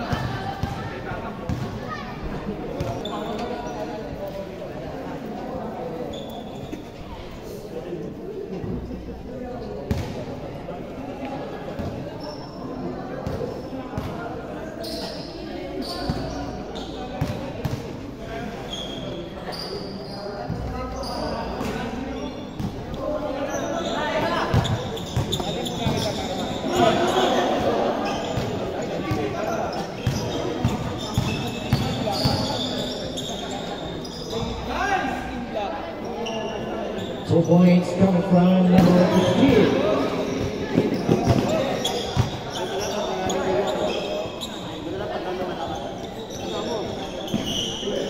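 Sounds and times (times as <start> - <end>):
players' voices: 0.0 - 48.0
basketball bouncing on court: 0.1 - 0.9, 1.5 - 1.8, 9.9 - 10.2, 30.0 - 32.5, 38.8 - 42.4
shoe squeaks: 2.8 - 4.0, 5.9 - 7.0, 12.0 - 13.6, 14.7 - 17.4, 18.5 - 22.8, 23.4 - 35.3, 36.0 - 37.5, 38.8 - 48.0.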